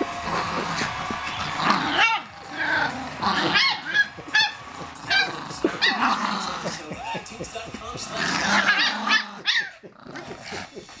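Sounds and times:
dog growling: 0.0s - 11.0s.

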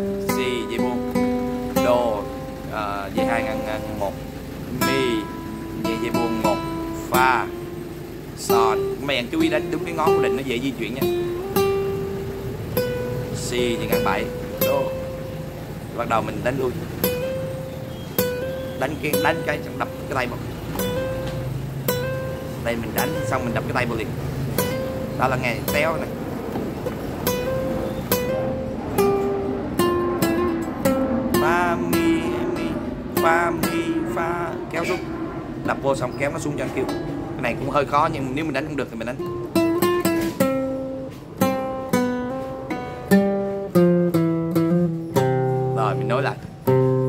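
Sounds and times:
classical guitar single notes: 0.0s - 37.3s, 39.1s - 47.0s.

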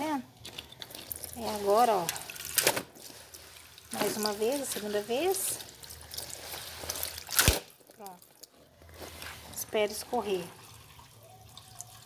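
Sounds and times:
water trickling and dripping: 0.7s - 8.6s, 9.2s - 12.0s.

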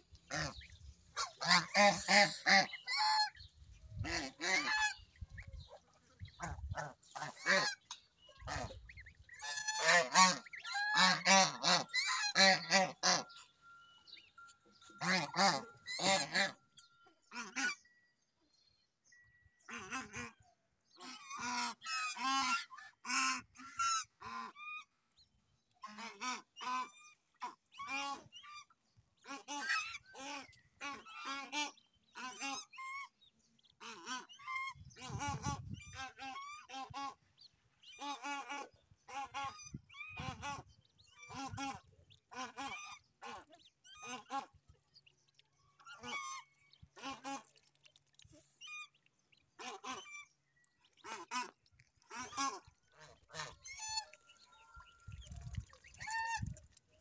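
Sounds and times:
geese honking: 0.0s - 17.8s, 49.6s - 56.6s
goslings peeping: 0.0s - 17.9s, 19.6s - 57.0s.

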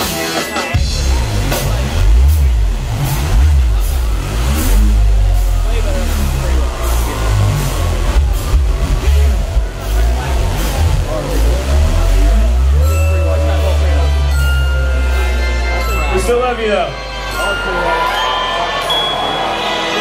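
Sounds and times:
electronic funk music: 0.0s - 20.0s.

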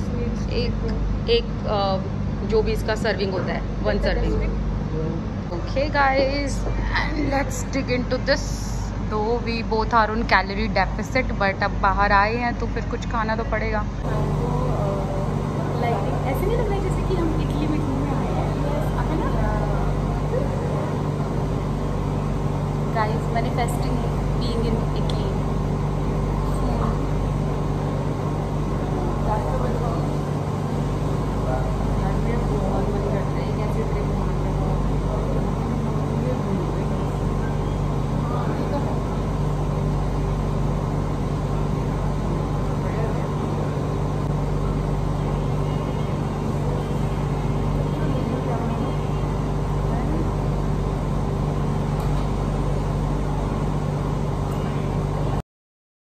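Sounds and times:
steady mechanical hum: 0.0s - 55.4s
murmur of distant voices: 12.3s - 55.4s.

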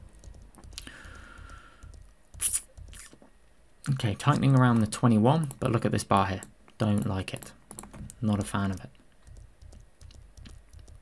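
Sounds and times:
computer keyboard clicks: 4.3s - 11.0s.

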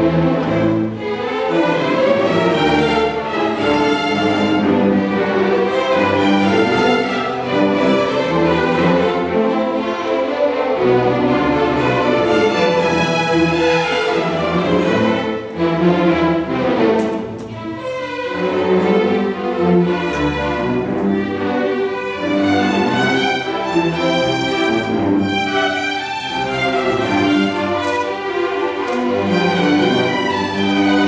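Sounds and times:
string orchestra playing a tango: 0.0s - 31.0s.

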